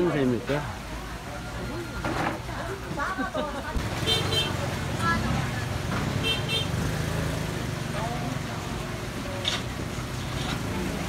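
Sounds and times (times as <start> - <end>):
market chatter: 0.0 - 11.0
small engine rumbling: 3.8 - 11.0.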